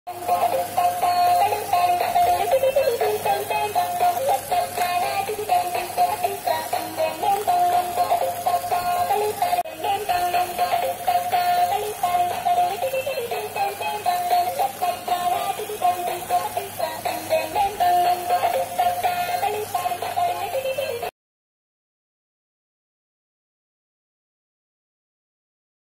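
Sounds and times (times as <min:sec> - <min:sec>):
electronic toy melody: 0:00.1 - 0:21.1.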